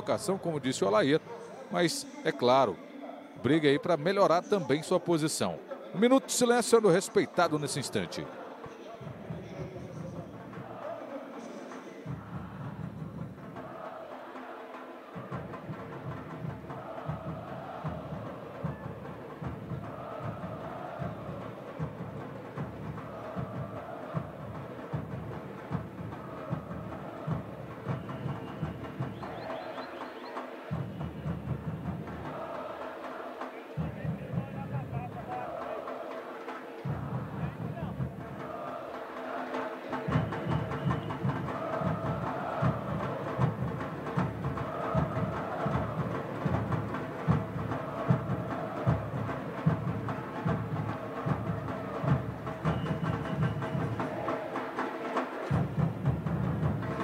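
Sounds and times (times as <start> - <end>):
crowd singing: 0.0 - 57.0
drums beating steady rhythm: 9.0 - 57.0.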